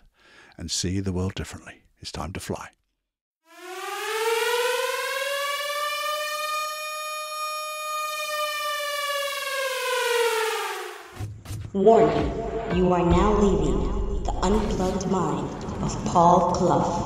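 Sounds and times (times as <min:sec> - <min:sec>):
air raid siren winding: 0:03.5 - 0:11.2.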